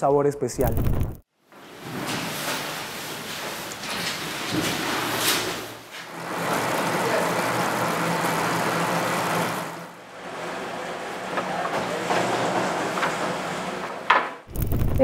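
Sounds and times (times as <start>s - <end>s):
dough mixer running: 6.1s - 13.7s.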